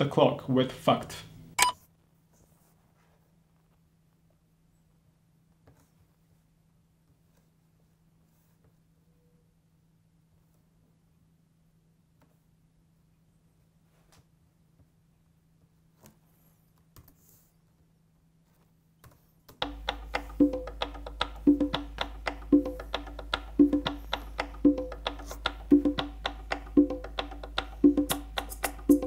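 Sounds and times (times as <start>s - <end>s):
conga hand drum loop: 19.6s - 29.0s.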